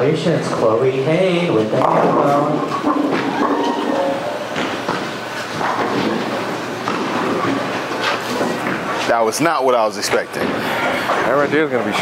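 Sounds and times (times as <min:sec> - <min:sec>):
bowling balls rolling: 0:00.3 - 0:12.0
bowling pins clattering: 0:01.5 - 0:12.0.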